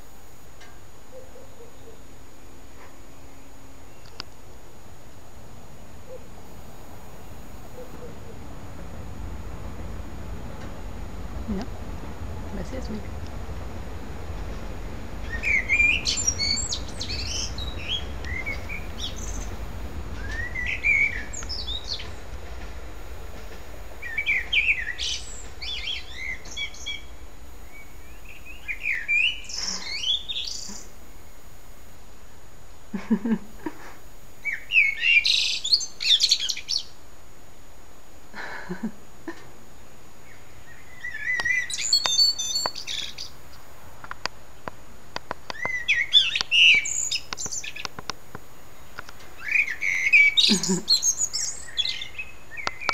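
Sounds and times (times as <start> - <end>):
songbird singing: 0.0 - 37.0, 39.8 - 52.9.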